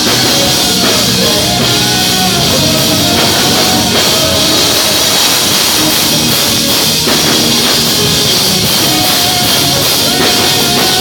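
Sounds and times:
live band music over sound system: 0.0 - 11.0.

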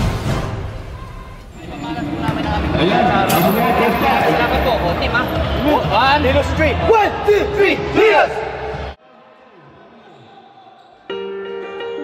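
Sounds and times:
distant voices in sports hall: 0.8 - 12.0.

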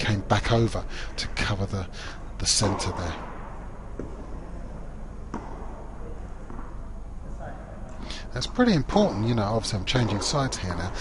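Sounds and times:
low hum of hall: 0.0 - 11.0
tennis balls knocking: 2.6 - 7.0, 8.4 - 11.0.

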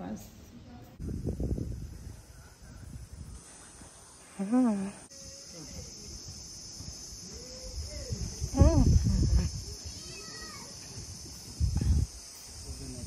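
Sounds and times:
high insect chorus: 0.0 - 13.0.

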